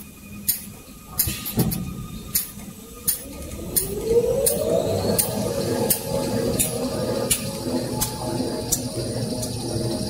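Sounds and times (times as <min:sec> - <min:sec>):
machine mechanical rumble: 0:00.0 - 0:10.0
machine whine: 0:00.0 - 0:10.0
sharp mechanical ticks: 0:02.3 - 0:04.6.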